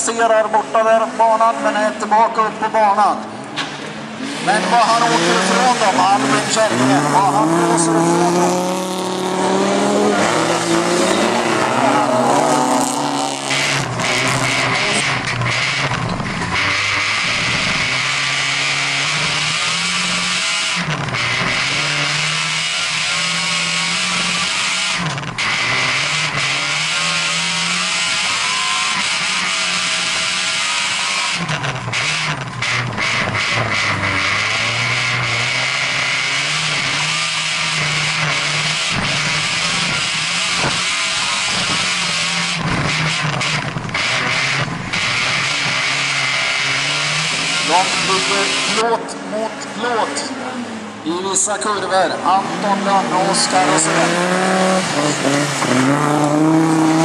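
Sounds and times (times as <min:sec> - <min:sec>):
car engine accelerating and shifting: 0:00.0 - 0:57.0.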